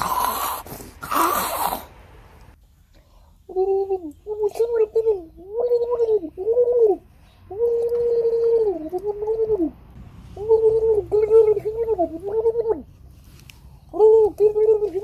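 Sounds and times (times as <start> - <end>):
child making gargly sound effect: 0.0 - 1.9.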